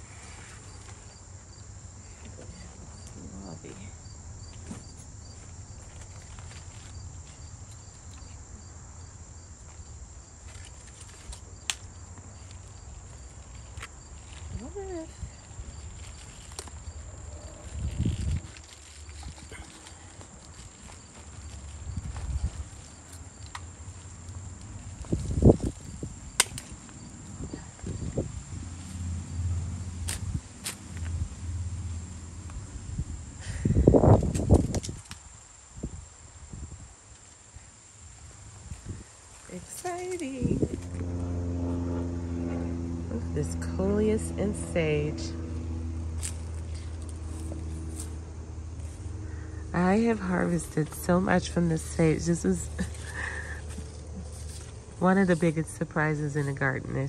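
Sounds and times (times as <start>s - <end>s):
high insect drone: 0.0s - 57.0s
leaves rustling: 4.7s - 8.6s, 9.5s - 41.3s, 45.5s - 57.0s
pruning shears snipping: 26.4s - 26.8s.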